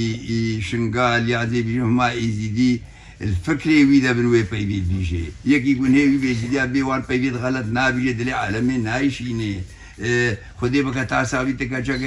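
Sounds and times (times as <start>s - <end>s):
elderly man speaking: 0.0s - 12.0s.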